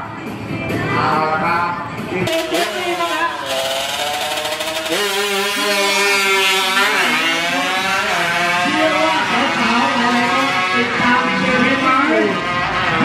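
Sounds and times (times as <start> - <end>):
scooter engine revving: 2.2 - 13.0.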